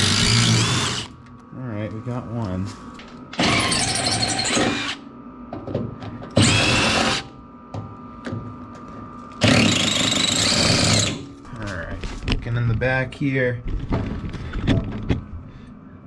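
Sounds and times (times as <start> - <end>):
cordless impact driver: 0.0 - 1.1, 3.4 - 5.0, 6.4 - 7.3, 9.4 - 11.2.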